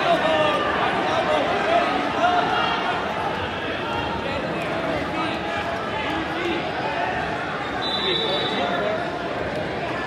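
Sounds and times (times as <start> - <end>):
echoing crowd hubbub: 0.0 - 10.0.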